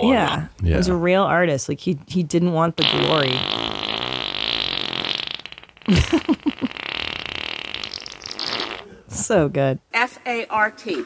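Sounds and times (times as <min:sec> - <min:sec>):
long rattling fart: 0:02.8 - 0:08.9.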